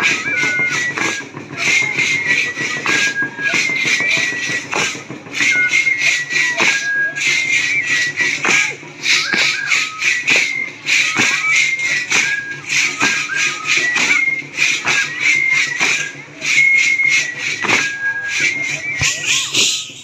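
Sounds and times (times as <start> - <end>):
drum strikes: 0.0 - 20.0
high flute melody: 0.0 - 20.0
rhythmic shaker hiss: 0.0 - 20.0.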